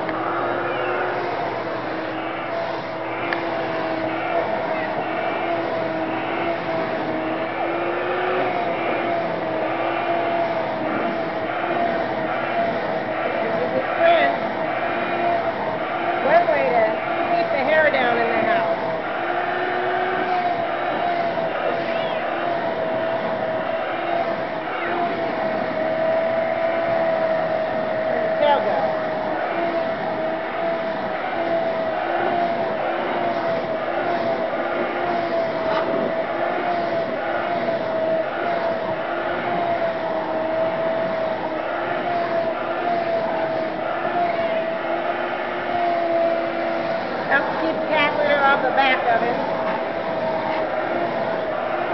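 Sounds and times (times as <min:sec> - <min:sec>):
vacuum cleaner motor whining: 0:00.0 - 0:51.9.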